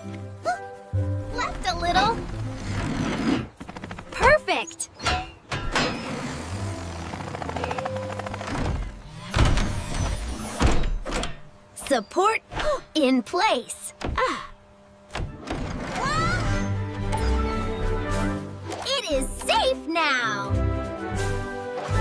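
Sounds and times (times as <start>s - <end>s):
background music: 0.0s - 10.2s, 15.2s - 22.0s.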